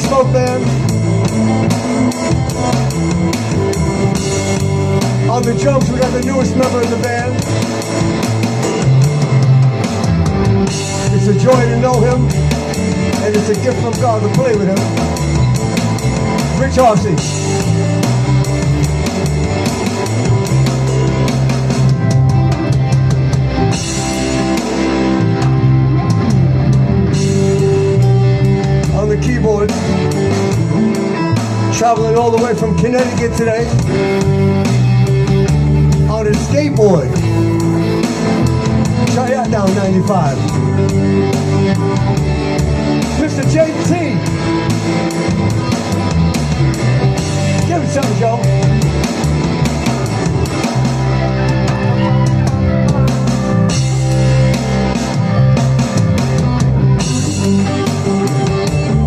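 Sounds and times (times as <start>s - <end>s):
drum kit: 0.0s - 59.0s
electric bass notes: 0.0s - 59.0s
guitar: 0.0s - 59.0s
rock band playing: 0.0s - 59.0s.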